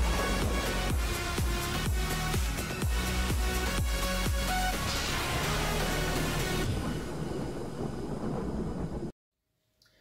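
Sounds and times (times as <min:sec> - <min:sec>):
rumbling whoosh: 0:00.0 - 0:02.7.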